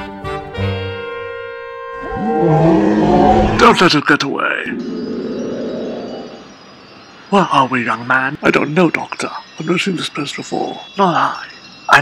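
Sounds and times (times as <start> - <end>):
ringing chime-like transition effect: 4.5 - 12.0.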